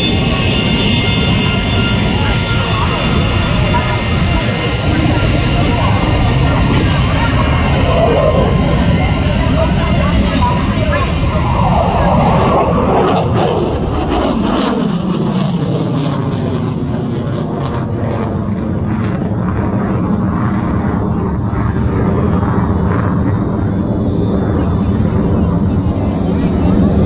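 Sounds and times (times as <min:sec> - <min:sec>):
jet engine noise flying past: 0:00.0 - 0:27.0.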